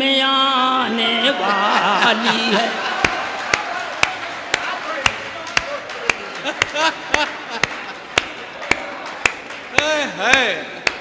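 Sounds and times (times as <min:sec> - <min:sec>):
slow steady clapping: 0:02.7 - 0:11.0.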